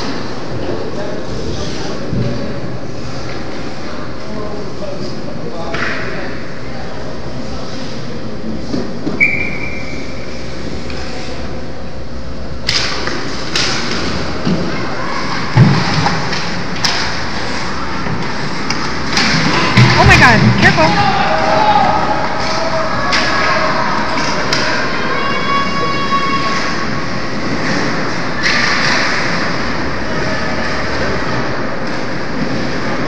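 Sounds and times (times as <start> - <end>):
arena noise: 0.0 - 33.0
spectator chatter: 14.4 - 33.0
sticks and puck hitting boards: 15.5 - 17.5, 22.5 - 24.8.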